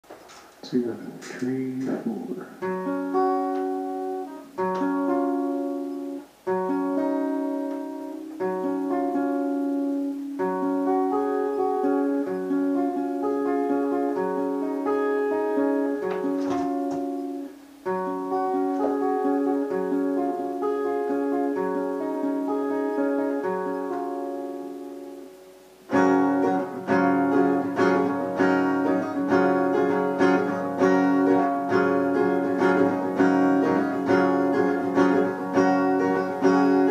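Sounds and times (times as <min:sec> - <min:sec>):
acoustic guitar fingerpicking: 0:00.1 - 0:36.9.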